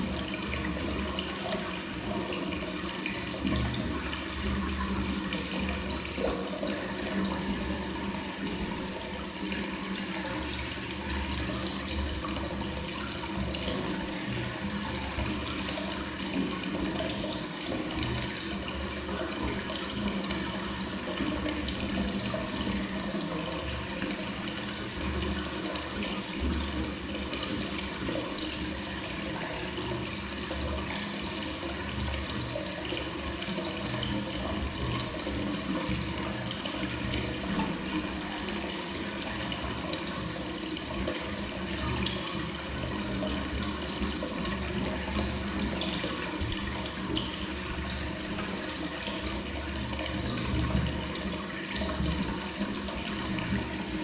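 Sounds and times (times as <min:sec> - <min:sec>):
water pouring into a bath: 0:00.0 - 0:54.0.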